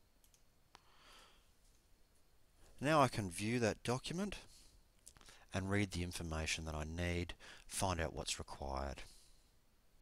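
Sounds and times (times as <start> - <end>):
computer mouse click: 0.2 - 0.8.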